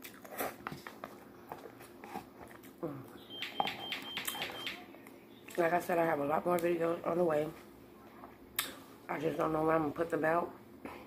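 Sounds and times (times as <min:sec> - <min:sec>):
chewing noodles: 0:00.0 - 0:02.8.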